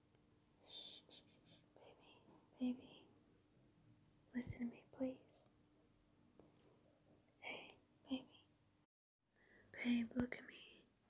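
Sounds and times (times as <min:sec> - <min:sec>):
woman whispering breathily: 0:00.6 - 0:03.1, 0:07.4 - 0:08.5, 0:09.7 - 0:10.9.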